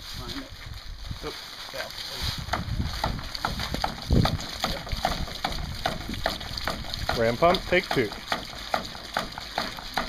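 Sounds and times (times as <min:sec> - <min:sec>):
water spurting and splashing: 0:00.6 - 0:10.0.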